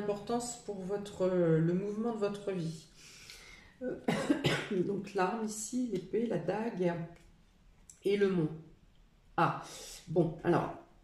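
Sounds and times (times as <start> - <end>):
woman coughing: 4.0 - 4.9.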